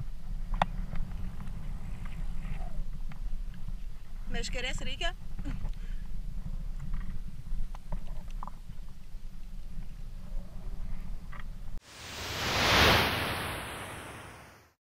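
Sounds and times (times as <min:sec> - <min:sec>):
wind rumble on microphone: 0:00.0 - 0:11.8
whoosh sound effect: 0:11.8 - 0:14.8.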